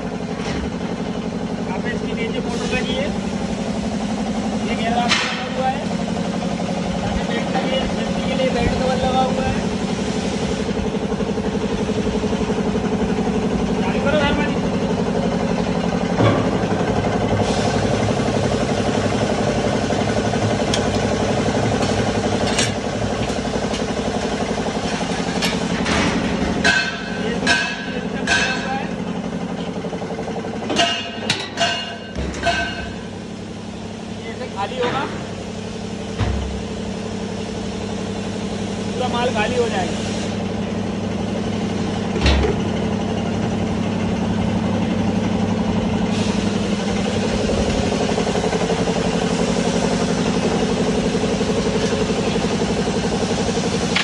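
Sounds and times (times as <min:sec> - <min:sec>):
metal knocks and clanks: 0:16.2 - 0:16.7.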